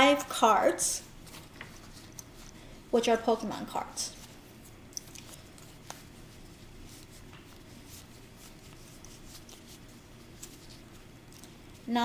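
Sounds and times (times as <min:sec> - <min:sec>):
low room hum: 0:00.0 - 0:12.0
trading cards rustling: 0:01.2 - 0:02.6, 0:03.9 - 0:11.9.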